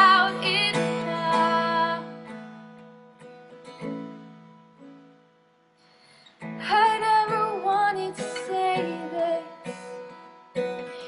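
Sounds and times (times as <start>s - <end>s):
woman singing: 0.0s - 2.3s, 6.6s - 11.0s
strummed acoustic guitar: 0.0s - 11.0s.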